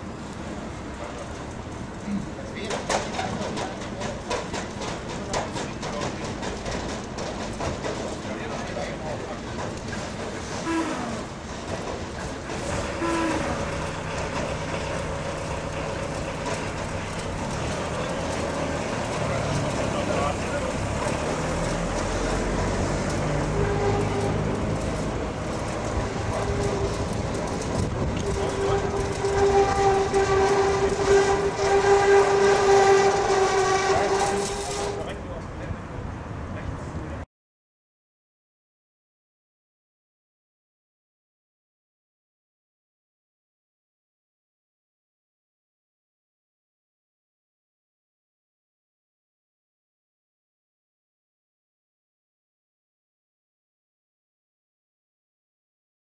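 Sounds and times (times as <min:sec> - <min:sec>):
roller shutter motor whine: 0:10.2 - 0:35.2.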